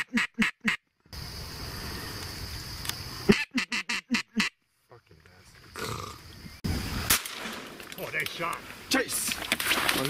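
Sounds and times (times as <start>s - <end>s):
duck quacks: 0.0s - 0.8s, 3.3s - 4.6s
steady background hiss: 1.0s - 3.3s, 4.6s - 10.0s.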